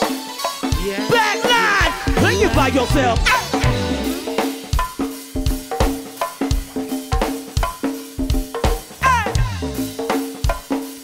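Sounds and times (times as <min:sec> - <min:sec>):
drum kit groove: 0:00.0 - 0:11.0.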